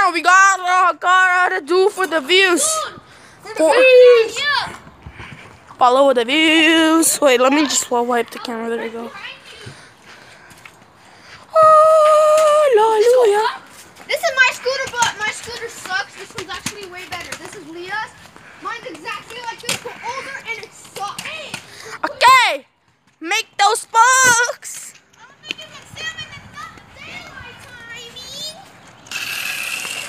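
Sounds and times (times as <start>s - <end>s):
children chattering: 0.0s - 4.8s, 5.8s - 22.6s, 23.3s - 29.1s
children shouting: 2.6s - 4.8s, 11.5s - 15.6s.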